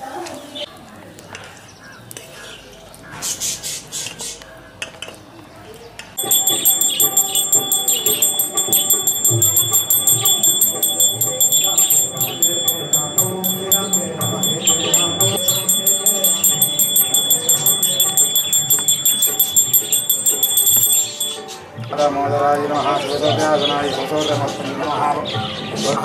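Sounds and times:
hand bell ringing rapidly: 6.2 - 21.5.

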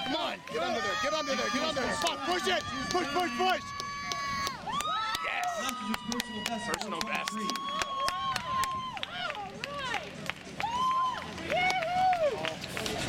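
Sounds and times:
spectators shouting and cheering: 0.0 - 13.0
hand claps: 1.9 - 13.0.

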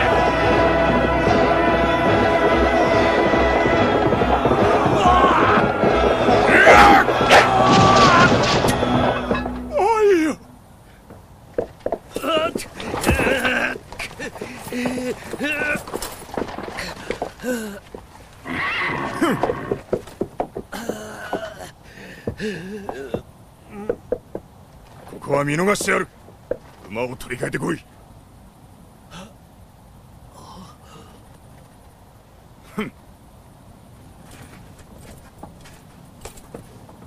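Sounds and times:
faint horse hoofbeats: 0.0 - 27.8
low steady background noise: 0.0 - 37.0
horse neighing: 18.4 - 20.0.

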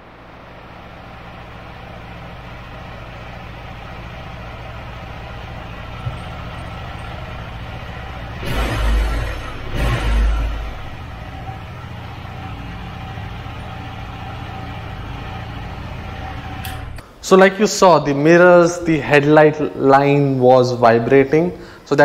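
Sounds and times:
engine revving surges: 0.0 - 17.0
motorcycle engine idling: 0.0 - 17.0.

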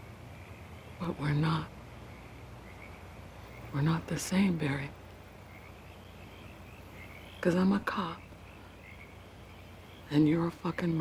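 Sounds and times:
frogs calling: 0.0 - 11.0.

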